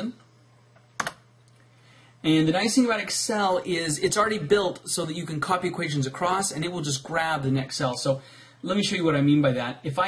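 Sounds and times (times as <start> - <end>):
faint background hiss: 0.0 - 10.0
computer keystroke: 1.0 - 1.2.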